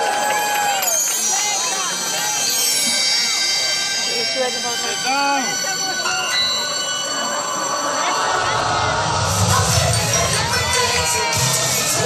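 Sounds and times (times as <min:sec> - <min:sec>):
crowd of spectators talking: 0:00.0 - 0:12.0
high steady tones: 0:01.2 - 0:12.0
show music from loudspeakers: 0:08.3 - 0:12.0.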